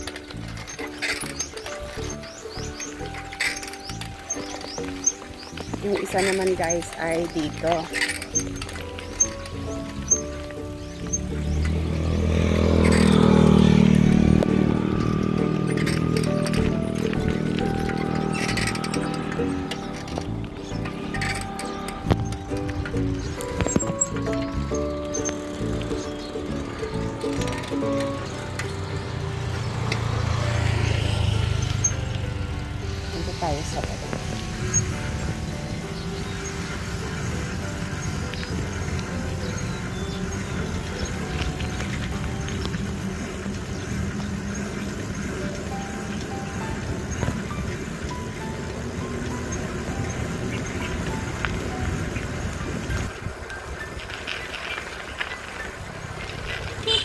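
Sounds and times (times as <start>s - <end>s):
background music: 0.0s - 57.0s
bicycle running on paved road: 0.0s - 57.0s.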